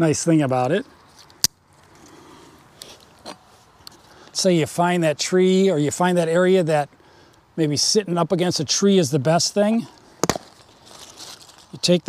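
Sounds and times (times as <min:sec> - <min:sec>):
rustling of harness gear: 0:10.0 - 0:12.0.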